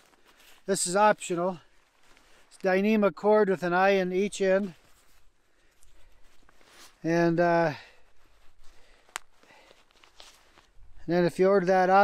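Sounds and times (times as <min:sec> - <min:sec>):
fabric and cord rustling: 0:00.0 - 0:02.9, 0:04.0 - 0:11.1.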